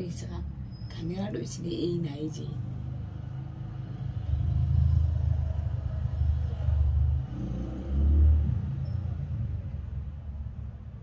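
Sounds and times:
low uneven rumble: 8.2 - 11.0.

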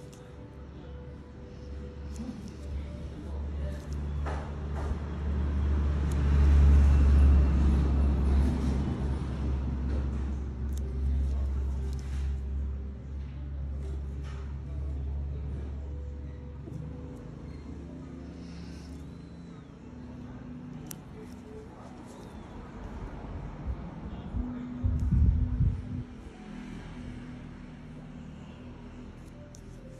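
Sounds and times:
low rumble and hum: 0.0 - 29.9
low rumble: 23.5 - 26.4.

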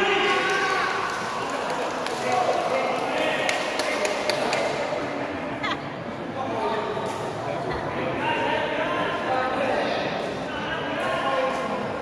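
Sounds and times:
voices in reverberant hall: 0.0 - 12.0.

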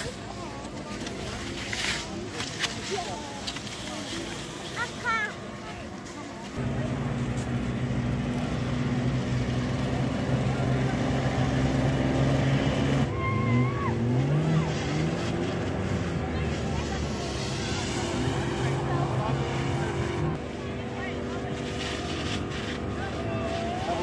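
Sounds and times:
crowd voices: 0.0 - 24.0
engine revving: 6.6 - 24.0.

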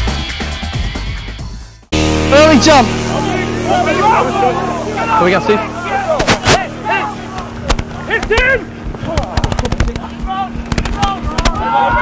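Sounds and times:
players calling out: 2.0 - 12.0
steady low hum: 2.0 - 12.0.

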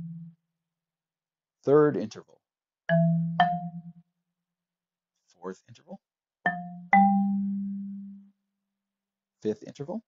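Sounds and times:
marimba note: 2.9 - 3.9.

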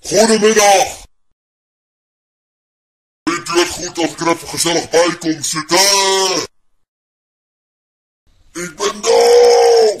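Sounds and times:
voice drawing out syllable: 8.6 - 10.0.

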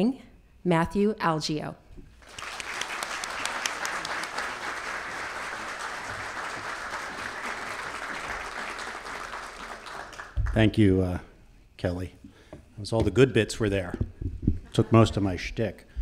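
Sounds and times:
audience applauding: 2.2 - 10.7.

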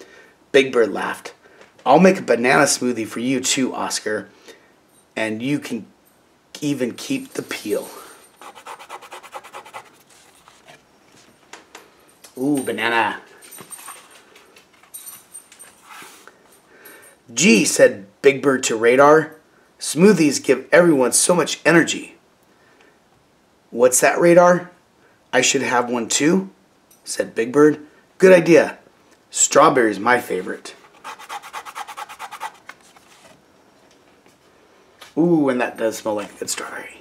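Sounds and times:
fingernail scratching paper: 8.4 - 10.8, 30.9 - 32.7.

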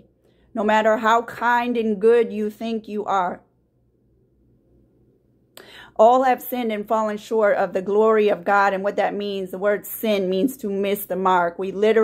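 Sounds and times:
faint low room hum: 0.0 - 12.0
woman inhaling: 0.1 - 0.6, 5.6 - 6.0
woman speaking: 0.6 - 3.5, 6.0 - 12.0.

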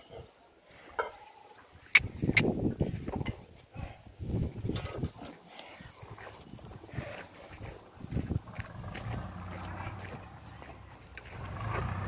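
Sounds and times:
knocks and scuffs of bulls: 4.3 - 12.0.

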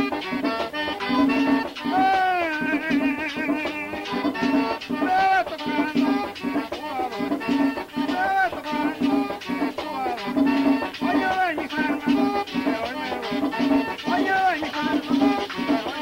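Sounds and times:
accordion melody: 0.0 - 16.0
scraped and shaken percussion: 0.0 - 16.0
steady low beat: 1.1 - 15.8.

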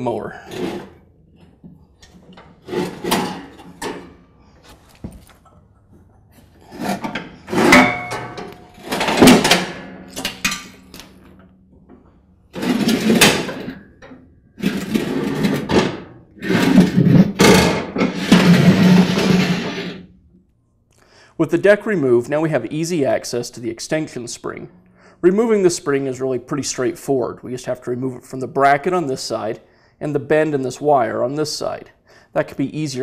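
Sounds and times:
metal scraping on concrete: 14.6 - 20.1.

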